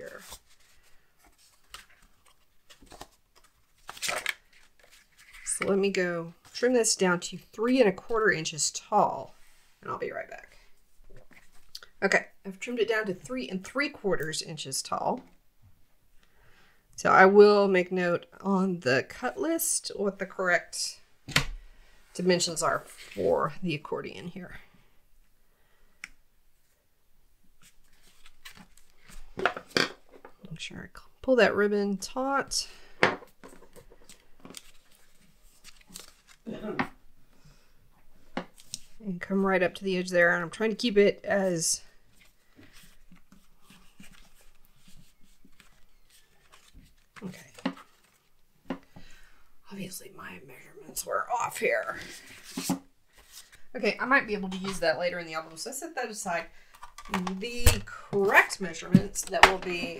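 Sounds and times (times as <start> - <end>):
woman speaking indistinctly: 0.0 - 0.3, 5.4 - 10.6, 11.8 - 15.3, 17.0 - 21.1, 22.2 - 24.7, 30.4 - 32.8, 36.4 - 37.0, 39.0 - 42.0, 47.2 - 47.7, 49.6 - 52.4, 53.7 - 56.5, 57.1 - 59.9
paper rustling: 0.0 - 5.7, 27.6 - 29.4, 33.4 - 36.5, 42.1 - 48.4, 52.0 - 53.7.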